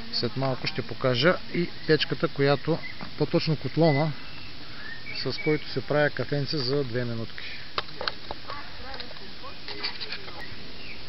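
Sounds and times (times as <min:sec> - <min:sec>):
distant voices chattering: 0:00.0 - 0:11.0
steady outdoor hiss: 0:00.0 - 0:11.0.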